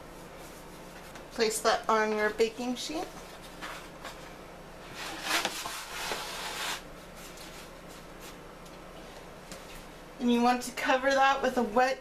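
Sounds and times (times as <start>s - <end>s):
dough rubbing and scraping: 0.0s - 1.6s, 4.8s - 8.5s
faint steady hum: 0.0s - 12.0s.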